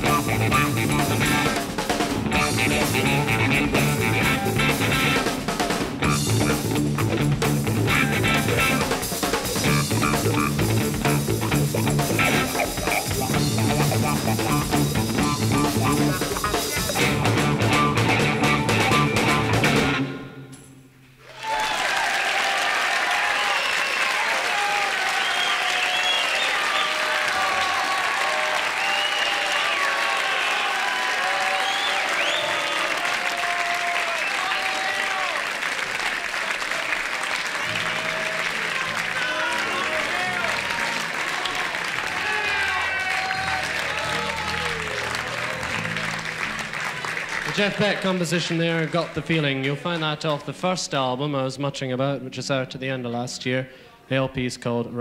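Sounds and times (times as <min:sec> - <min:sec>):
live rock band playing: 0:00.0 - 0:20.7
low instrument notes: 0:09.6 - 0:20.7
audience applauding and cheering: 0:21.2 - 0:50.0.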